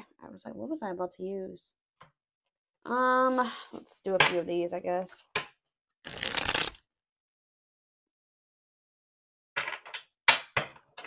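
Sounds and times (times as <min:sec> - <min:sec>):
cards being shuffled: 0:06.1 - 0:06.8.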